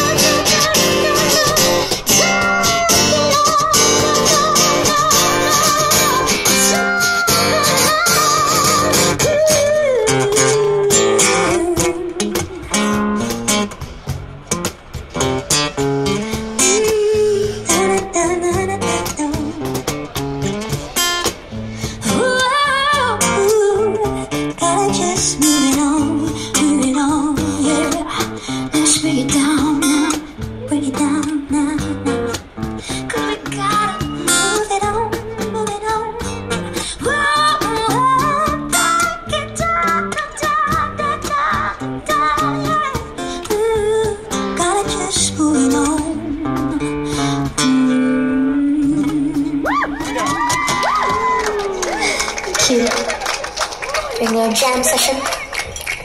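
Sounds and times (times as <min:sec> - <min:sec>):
woman singing: 0:00.0 - 0:12.7, 0:16.6 - 0:19.8, 0:22.0 - 0:32.4, 0:33.0 - 0:50.7
acoustic guitar strummed: 0:00.0 - 0:50.9.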